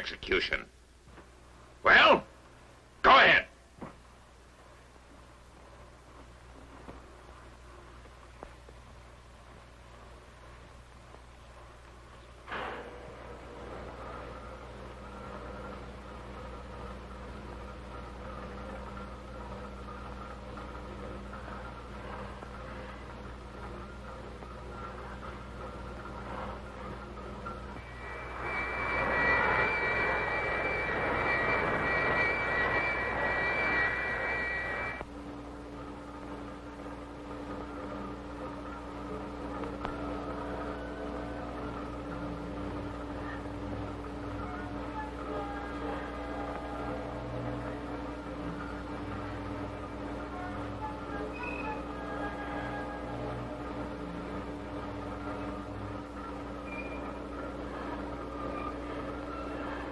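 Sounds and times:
soundtrack drone of held tones: 0:12.4 - 0:59.9
hissing rush with high ringing: 0:27.6 - 0:35.0, 0:42.6 - 0:50.2.

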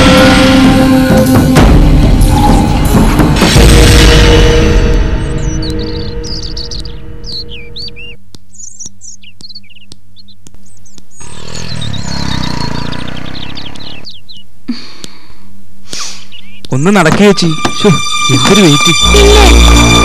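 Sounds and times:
background music: 0:00.0 - 0:08.2, 0:16.7 - 0:20.0
small birds chirping: 0:05.0 - 0:19.5.

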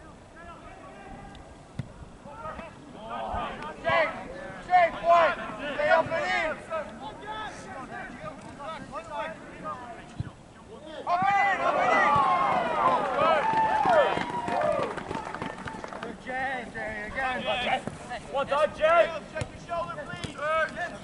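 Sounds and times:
voices shouting and calling: 0:02.2 - 0:15.3.

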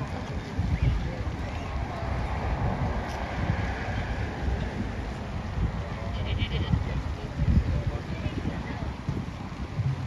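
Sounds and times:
faint crowd voices: 0:00.0 - 0:10.0
wind rumbling on microphone: 0:00.0 - 0:10.0.

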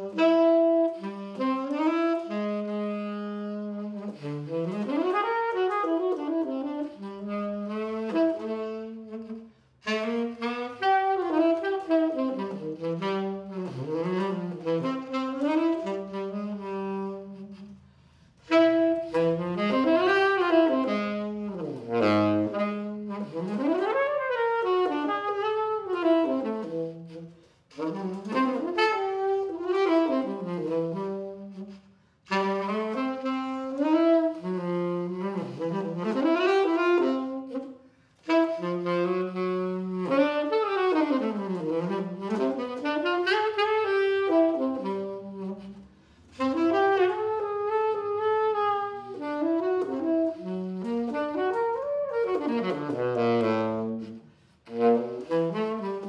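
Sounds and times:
solo tenor saxophone: 0:00.0 - 0:56.0.

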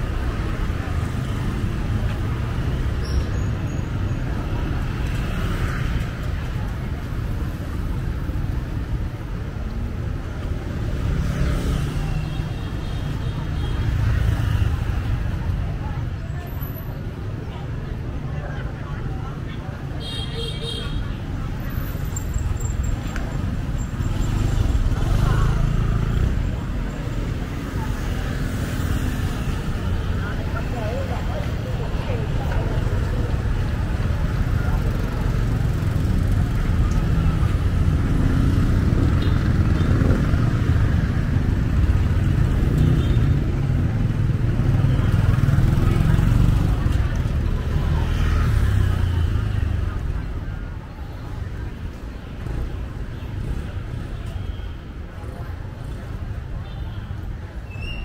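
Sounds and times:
people's voices: 0:00.0 - 0:58.0
traffic passing: 0:00.0 - 0:58.0.

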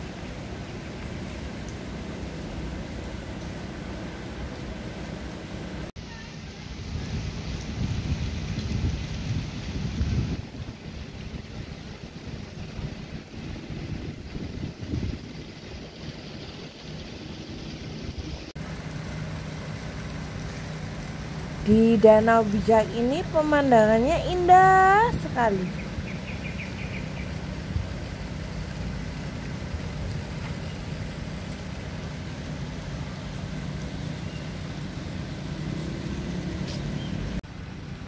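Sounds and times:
wind buffeting microphone: 0:06.8 - 0:16.8, 0:21.6 - 0:31.4.

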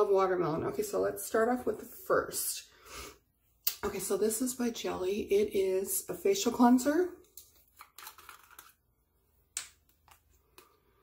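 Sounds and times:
plastic bottle rustling: 0:07.4 - 0:08.8.

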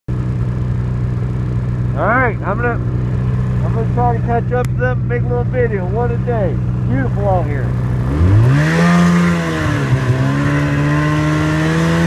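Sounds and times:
snowmobile engine running: 0:00.1 - 0:12.0.

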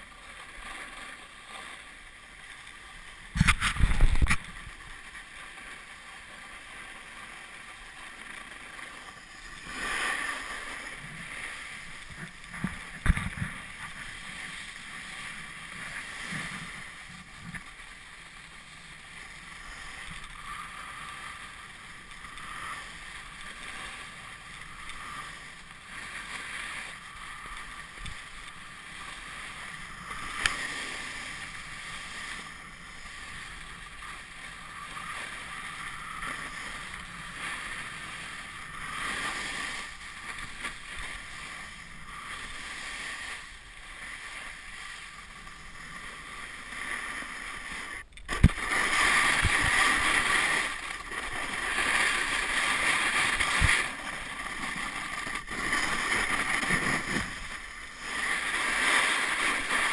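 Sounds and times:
skis scraping on snow: 0:00.0 - 0:59.9
wind on microphone: 0:03.3 - 0:04.7, 0:48.3 - 0:50.8.

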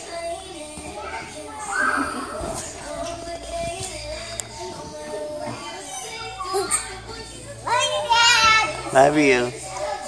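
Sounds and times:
children's voices: 0:01.0 - 0:03.0, 0:04.8 - 0:08.9.

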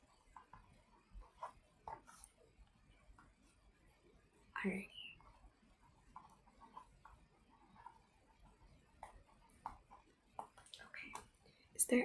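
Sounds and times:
woman speaking softly: 0:04.6 - 0:05.2, 0:10.8 - 0:11.2, 0:11.8 - 0:12.0.

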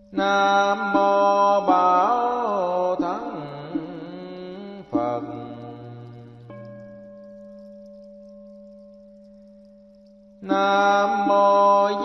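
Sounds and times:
bowl bell ringing: 0:06.5 - 0:12.0.

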